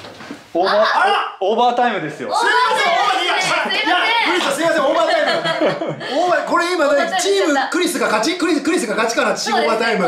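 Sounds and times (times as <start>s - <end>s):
people talking: 0.6s - 10.0s
people chuckling: 4.6s - 6.5s.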